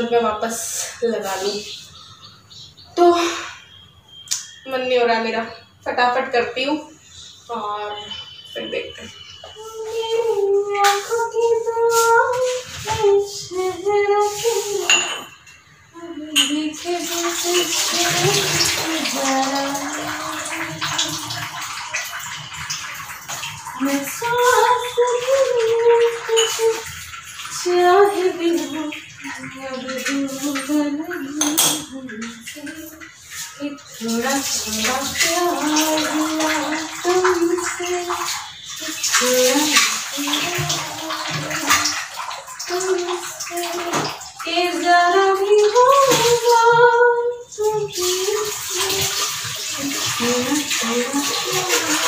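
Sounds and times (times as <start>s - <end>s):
dishes being washed by hand: 0.0s - 5.4s, 6.5s - 52.0s
dishes clinking: 14.8s - 15.6s, 16.3s - 16.8s, 26.3s - 27.0s, 30.0s - 33.6s
tap water running into sink: 16.3s - 52.0s
tap running into sink: 43.8s - 44.2s.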